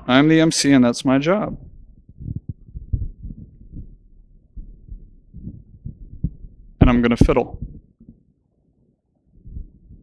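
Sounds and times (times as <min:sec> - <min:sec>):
microphone handling thumps and rubbing: 0:01.4 - 0:08.3, 0:09.4 - 0:10.0.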